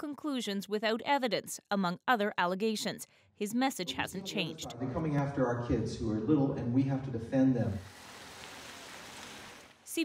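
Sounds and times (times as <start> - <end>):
car tyres hissing on wet road: 7.8 - 9.8.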